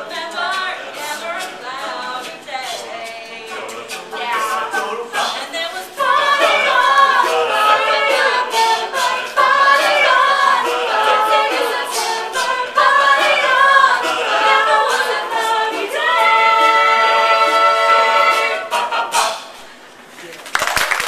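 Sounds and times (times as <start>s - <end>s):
a cappella group singing in harmony: 0.0s - 19.9s.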